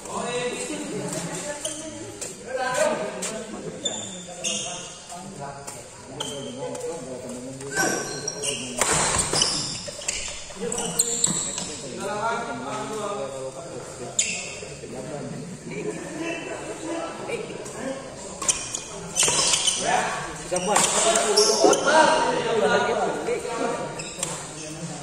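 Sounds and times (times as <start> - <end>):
voices talking and calling out: 0.0 - 25.0
shoes squeaking on floor: 0.1 - 12.1, 14.0 - 14.9, 17.7 - 22.3, 23.6 - 25.0
rackets hitting shuttlecock: 18.4 - 19.8.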